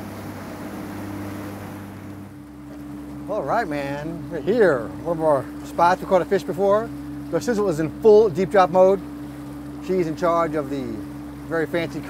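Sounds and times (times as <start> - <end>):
boat engine running: 0.0 - 12.0
water rushing past: 0.0 - 12.0
wind: 0.0 - 12.0.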